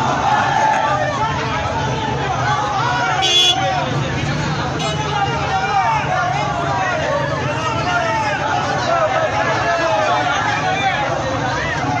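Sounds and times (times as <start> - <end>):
men shouting and talking: 0.0 - 12.0.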